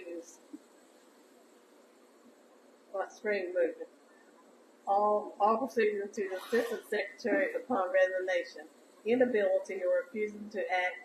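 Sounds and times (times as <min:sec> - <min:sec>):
faint room hiss: 0:00.0 - 0:11.0
person speaking: 0:04.9 - 0:08.5.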